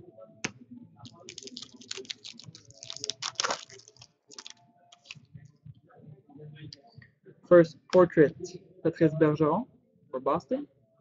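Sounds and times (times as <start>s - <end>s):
foil wrapper crinkling: 1.1s - 5.2s.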